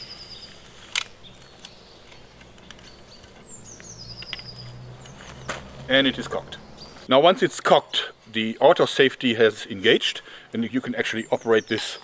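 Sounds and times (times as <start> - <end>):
crossbow cocking clicks and knocks: 0.7 - 5.2.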